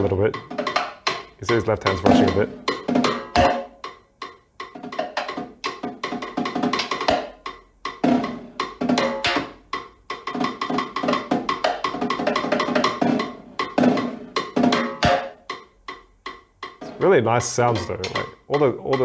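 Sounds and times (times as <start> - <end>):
snare drum played with sticks: 0.0 - 19.0.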